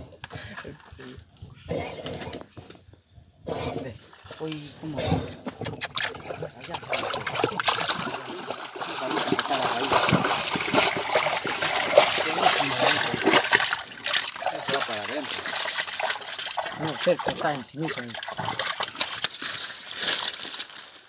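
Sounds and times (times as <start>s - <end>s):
muddy water splashing: 4.4s - 21.0s
dog digging in wet mud: 5.6s - 20.7s.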